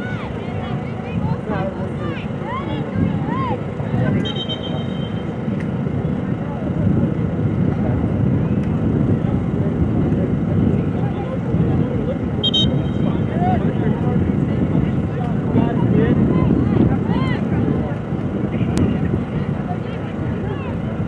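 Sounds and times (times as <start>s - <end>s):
wind rumbling on microphone: 0.0s - 21.0s
referee's whistle blast: 4.2s - 5.2s, 12.4s - 13.1s.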